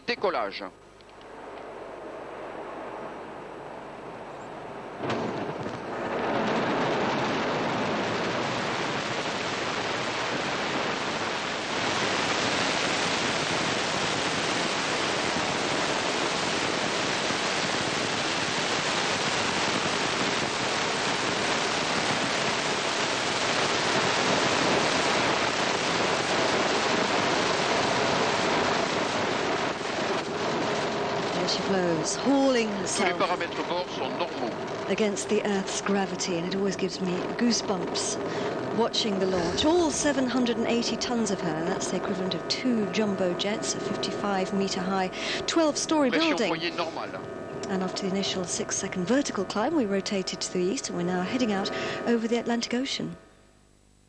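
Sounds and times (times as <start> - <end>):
rocket engine rumble: 0.9 - 53.2.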